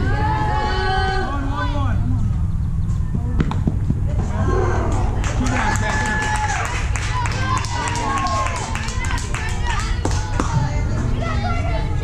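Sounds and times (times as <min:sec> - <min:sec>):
steady low rumble: 0:00.0 - 0:12.0
spectators shouting: 0:04.2 - 0:10.5.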